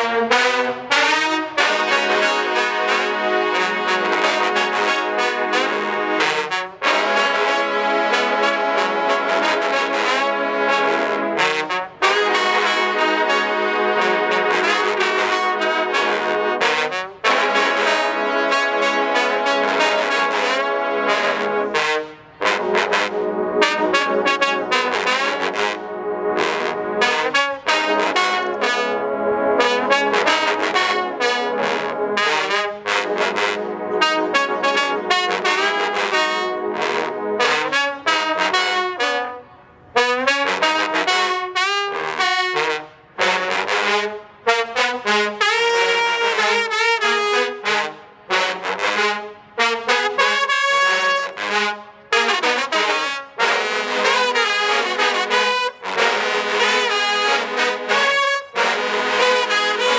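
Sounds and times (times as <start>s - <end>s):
trombone ensemble playing: 0.0s - 59.9s.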